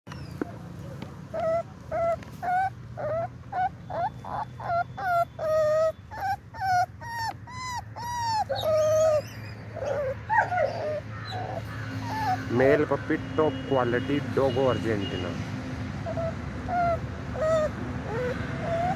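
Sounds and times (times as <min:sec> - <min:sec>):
puppy whimpering: 0:01.3 - 0:12.8, 0:16.0 - 0:18.9.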